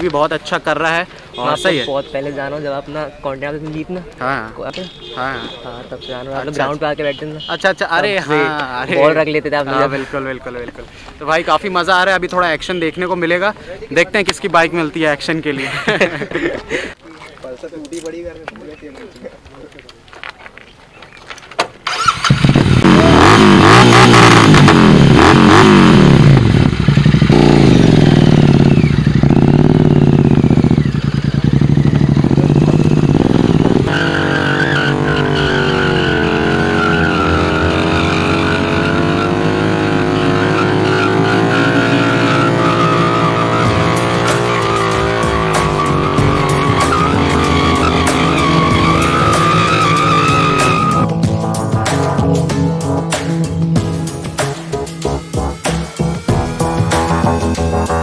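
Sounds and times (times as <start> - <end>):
motorcycle revving: 21.9 - 58.0
music: 43.6 - 58.0.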